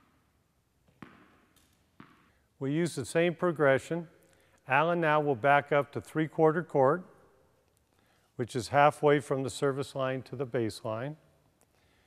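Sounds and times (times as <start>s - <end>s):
tennis ball tap: 0.8s - 2.3s.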